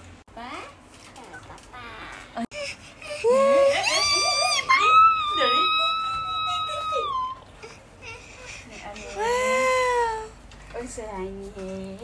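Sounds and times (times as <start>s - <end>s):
child wailing calls: 3.3s - 7.4s.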